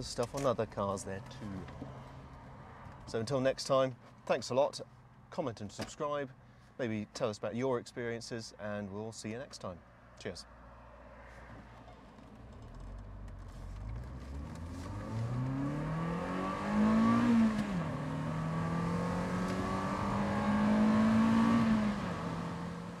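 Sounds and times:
car engine accelerating: 11.5s - 23.0s.

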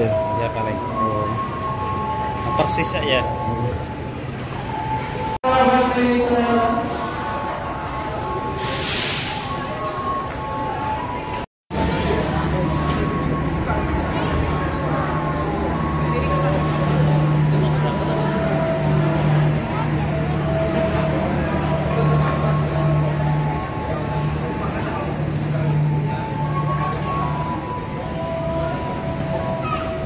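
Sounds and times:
large engine droning: 0.0s - 30.0s
people talking: 0.0s - 30.0s.

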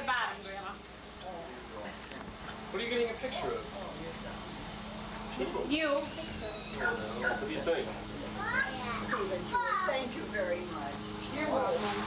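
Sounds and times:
indistinct talking: 2.6s - 12.0s.

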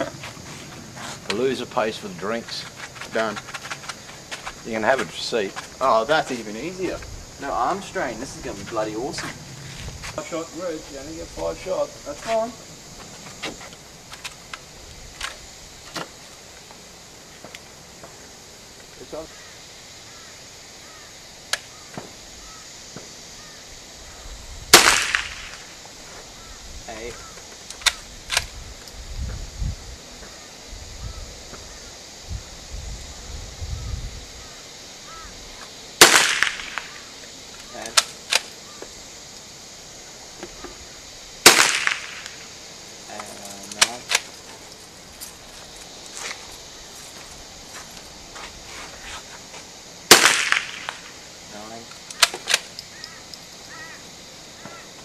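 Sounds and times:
faint sharp cracks and clicks: 21.5s - 21.7s, 24.8s - 25.7s, 27.3s - 29.0s, 35.6s - 38.6s, 41.5s - 42.5s, 43.2s - 44.4s, 50.1s - 51.1s, 51.9s - 53.5s
rifle shots with echo: 24.7s - 25.6s, 36.0s - 36.9s, 41.4s - 42.3s, 50.1s - 51.0s.

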